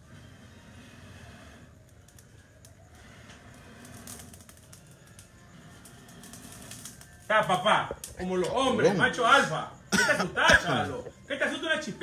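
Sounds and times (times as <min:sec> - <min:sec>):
blowing on coals: 0:00.0 - 0:07.3
charcoal grill crackling: 0:00.0 - 0:12.0
coals popping: 0:00.0 - 0:12.0.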